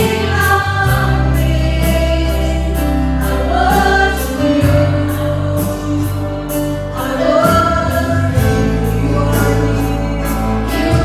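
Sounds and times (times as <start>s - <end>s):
bass guitar: 0.0s - 11.0s
guitar: 0.0s - 11.0s
keyboard: 0.0s - 11.0s
singers singing together: 0.0s - 11.0s.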